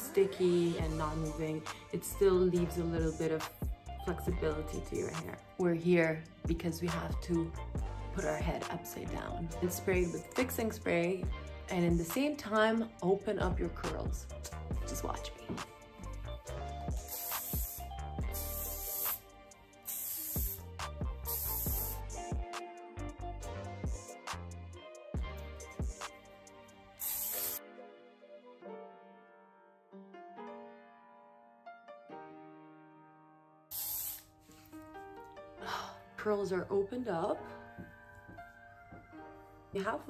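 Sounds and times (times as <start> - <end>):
background music with steady beat: 0.0 - 28.9, 33.7 - 40.0
aerosol can hissing bursts: 16.9 - 22.2, 27.0 - 27.6, 33.7 - 34.3.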